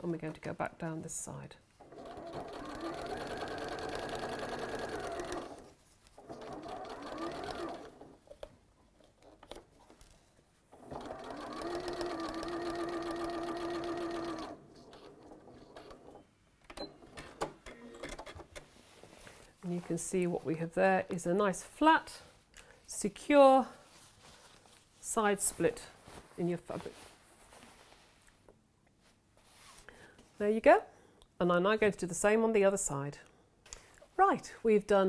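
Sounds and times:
sewing machine stitching: 1.8 - 8.2, 10.8 - 18.3
fabric handling: 22.2 - 30.4.

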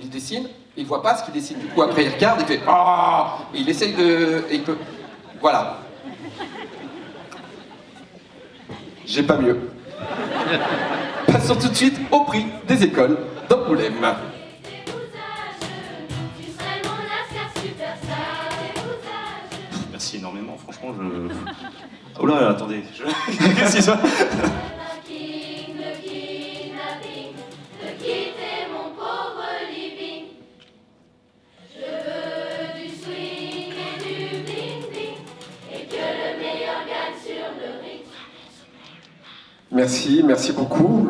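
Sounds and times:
music with choir singing: 13.2 - 20.0, 23.3 - 39.6.

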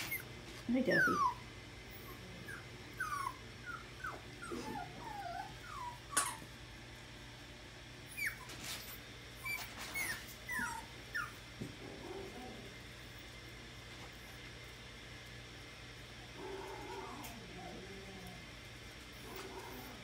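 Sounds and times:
puppies whimpering: 0.0 - 6.5, 8.1 - 11.4.

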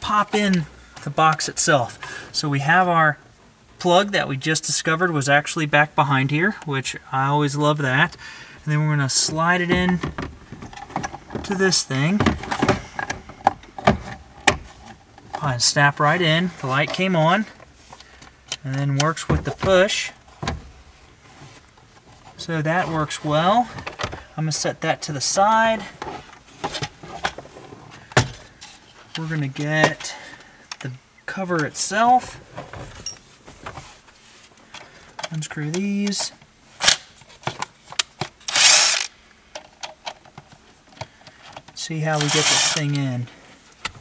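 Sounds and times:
cordless drill driving screw: 38.5 - 39.1, 42.2 - 42.8
drill clicks: 38.5 - 39.1.

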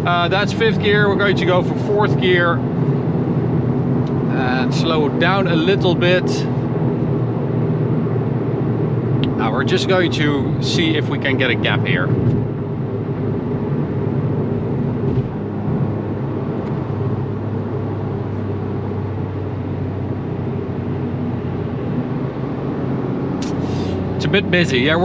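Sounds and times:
car engine running: 0.0 - 25.0.

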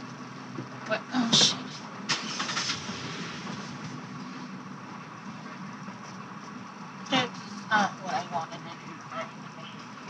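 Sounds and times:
car engine humming: 0.0 - 10.0.

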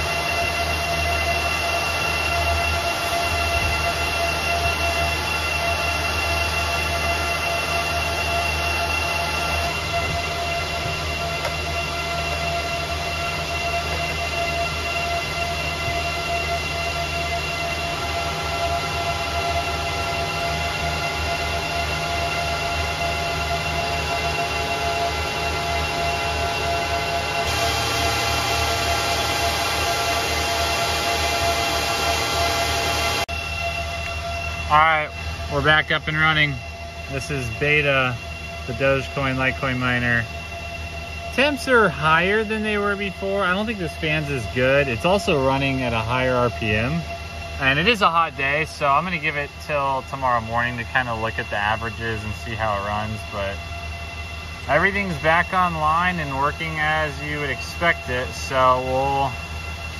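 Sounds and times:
cooling fans whirring with whines: 0.0 - 59.9.

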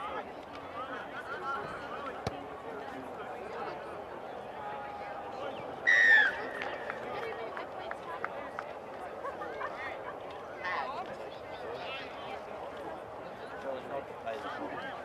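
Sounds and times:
voices chattering: 0.0 - 15.0.

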